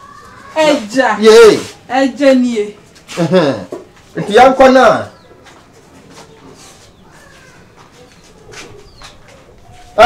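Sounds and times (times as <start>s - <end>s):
faint bird calls: 6.2s - 10.0s.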